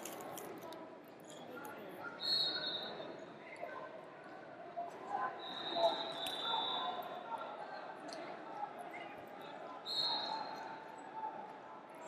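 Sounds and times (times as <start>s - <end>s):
murmur of distant voices in hall: 0.0s - 12.0s.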